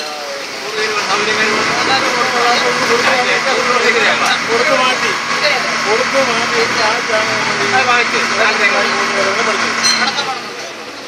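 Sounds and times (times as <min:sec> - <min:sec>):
voices talking: 0:00.1 - 0:11.0
boat engine running: 0:00.4 - 0:11.0.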